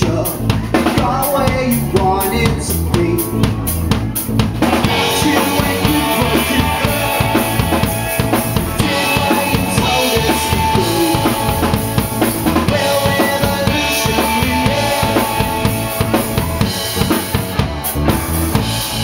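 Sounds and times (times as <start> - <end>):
drum kit pounding: 0.0 - 19.0
electric guitars: 0.0 - 19.0.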